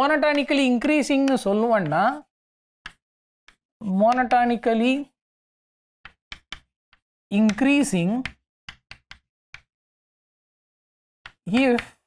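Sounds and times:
chalk tapping on chalkboard: 2.9 - 4.4, 6.0 - 9.7, 11.2 - 12.0.

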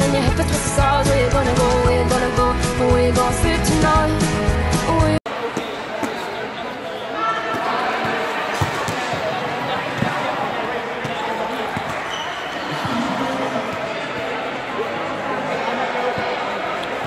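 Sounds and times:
young people chattering: 5.3 - 17.0
balls bouncing in sports hall: 7.4 - 14.8.

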